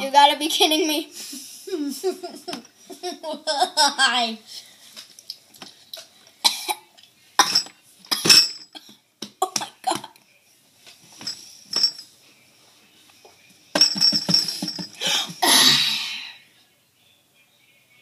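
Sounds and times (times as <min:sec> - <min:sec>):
child coughing: 0:06.5 - 0:08.4, 0:15.2 - 0:16.0.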